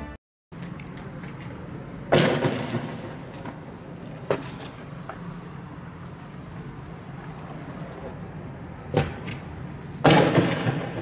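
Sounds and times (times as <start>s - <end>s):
explosive bangs: 2.1s - 3.6s, 10.0s - 11.0s.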